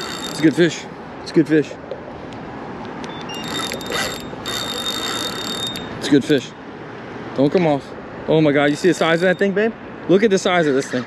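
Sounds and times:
fishing reel ratcheting: 0.0 - 0.6, 3.4 - 5.9, 8.7 - 9.4
thin high whine: 0.0 - 0.9, 3.2 - 6.1, 8.5 - 9.6.

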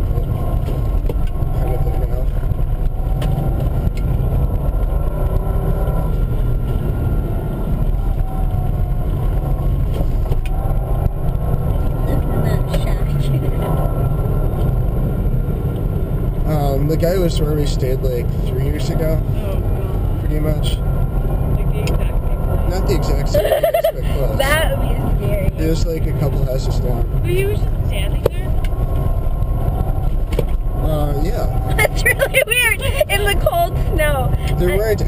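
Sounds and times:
car engine droning: 0.0 - 35.0
tyre noise on snowy road: 0.0 - 35.0.

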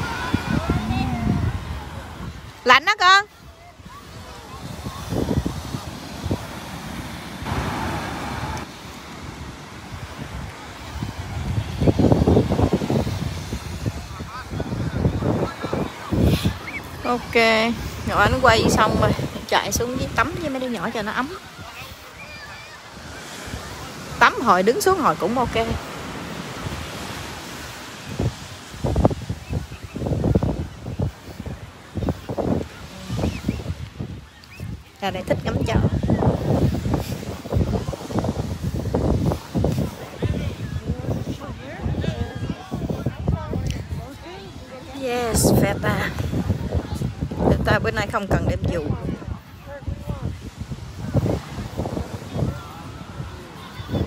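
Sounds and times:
ocean surf hiss: 0.0 - 54.0
wave washing in: 0.0 - 54.0
wind buffeting microphone: 0.0 - 54.0.

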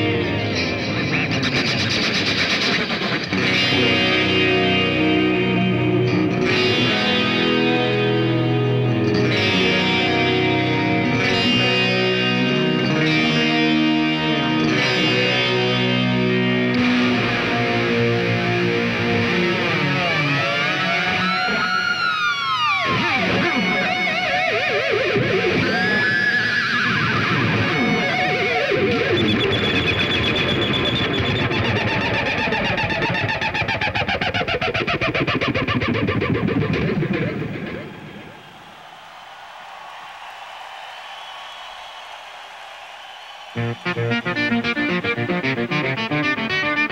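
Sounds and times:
electric guitar playing: 0.0 - 38.2, 43.6 - 46.9.

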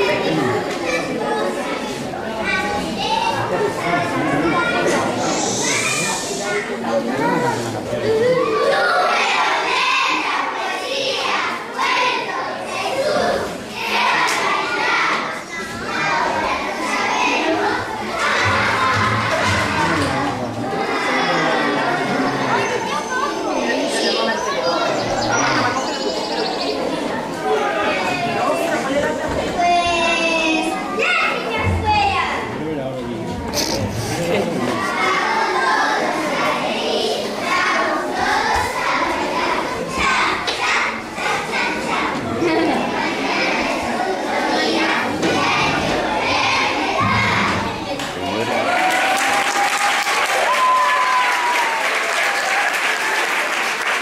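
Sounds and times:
young children's voices overlapping: 0.0 - 54.0.

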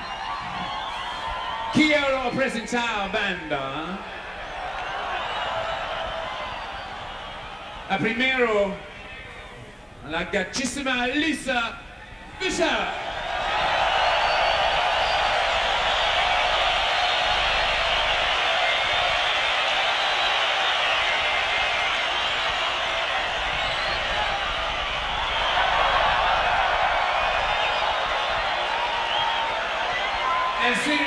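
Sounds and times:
stadium crowd cheering and screaming: 0.0 - 10.0, 10.6 - 31.0.

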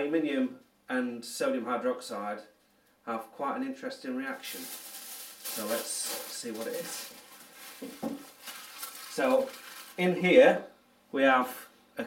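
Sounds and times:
aluminium foil crinkling: 4.3 - 10.2.

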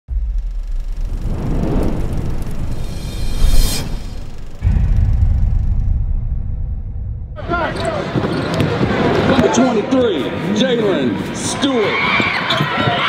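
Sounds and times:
cinematic intro music: 0.1 - 7.5
deep bass hit: 0.1 - 7.6
deep rumble with whoosh: 0.1 - 7.6.

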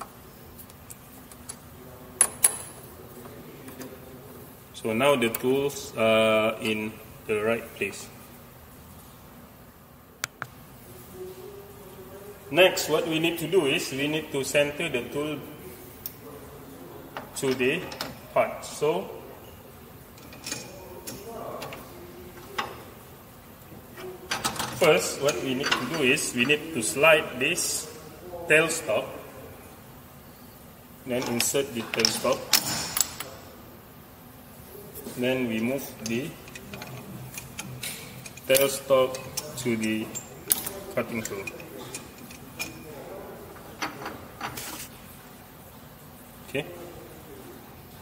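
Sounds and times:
wrench metallic clicks: 36.0 - 42.8.

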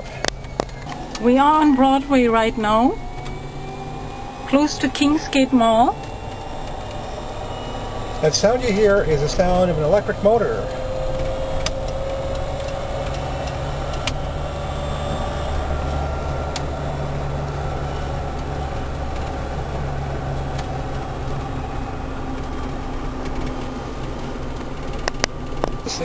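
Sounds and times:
electric motor whine: 0.0 - 25.8
electric motor hum: 0.0 - 25.9
road noise: 0.0 - 26.0.

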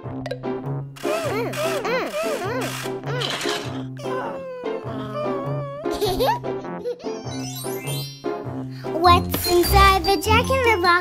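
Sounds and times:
cartoon babies crying: 1.0 - 7.5
children's backing music: 4.4 - 11.0.

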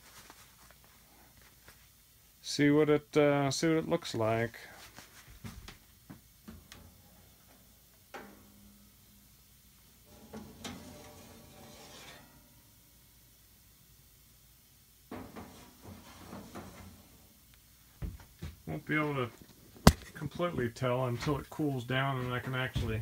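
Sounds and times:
metal rack scraping: 10.1 - 12.4, 15.2 - 17.0.

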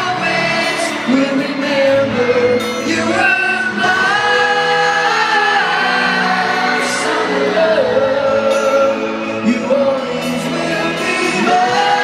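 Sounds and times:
live pop ballad with band: 0.0 - 12.0
voices singing long notes: 0.0 - 12.0.

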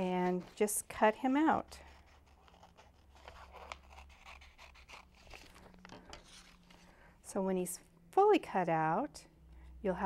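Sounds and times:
scissors snipping paper: 2.0 - 5.4.

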